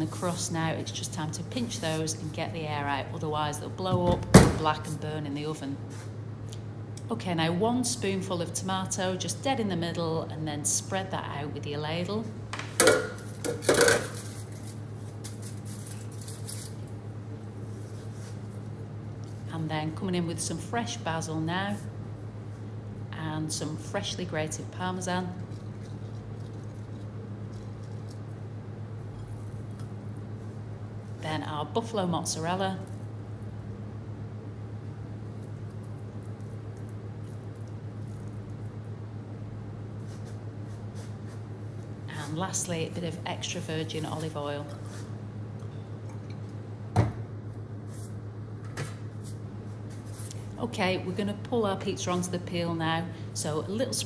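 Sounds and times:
steady low hum: 0.0s - 54.0s.

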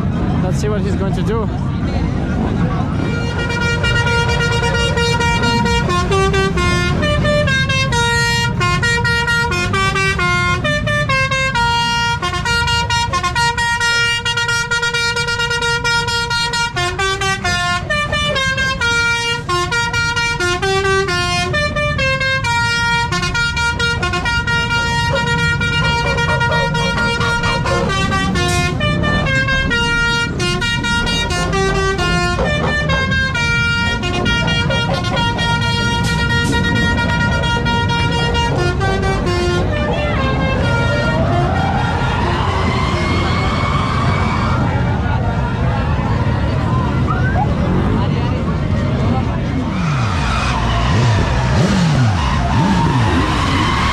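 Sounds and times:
bus melody horn: 2.9s - 44.8s, 49.5s - 53.9s.

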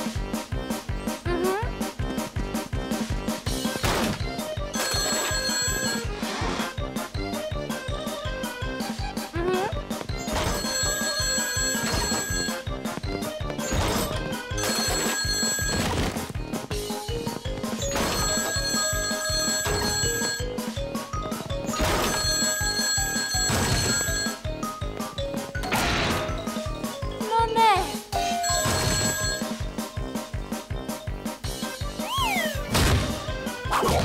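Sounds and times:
telephone ringing: 4.7s - 6.4s, 10.2s - 16.3s, 17.6s - 24.8s, 28.2s - 29.8s.

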